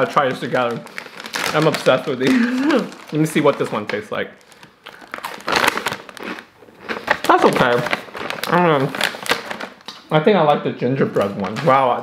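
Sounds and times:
plastic snack bag crinkling: 0.0s - 10.1s
crunching brittle: 0.2s - 10.0s.

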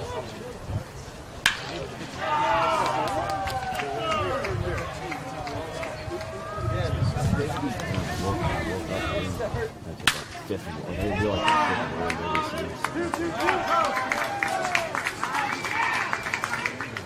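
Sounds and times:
bat cracking baseball: 1.4s - 3.6s, 10.0s - 10.4s.

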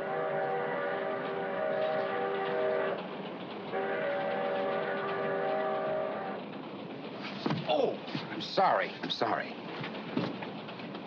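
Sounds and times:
moving train rumble: 0.0s - 11.0s
train wheels clickety-clack: 0.0s - 11.0s.

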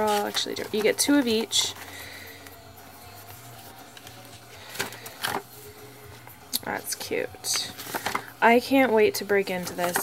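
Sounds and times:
notebook pages turning: 0.0s - 2.5s, 3.1s - 5.6s, 7.7s - 8.3s.

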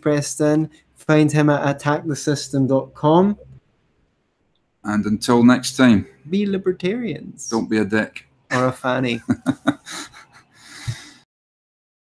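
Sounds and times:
person laughing: 8.5s - 11.2s.

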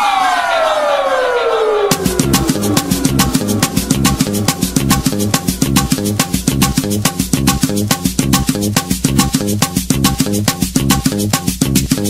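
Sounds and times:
descending synth sweep: 0.0s - 8.3s
hissing noise wash: 0.9s - 8.2s
percussion beat: 1.9s - 12.0s.

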